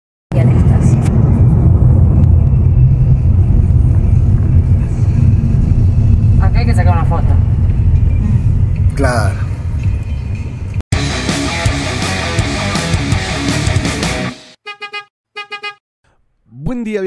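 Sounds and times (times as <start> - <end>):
car cabin road and engine rumble: 0.4 - 10.8.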